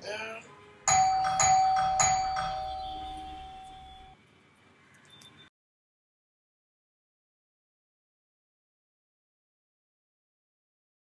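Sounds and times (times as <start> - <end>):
bell chime: 0.9 - 4.2.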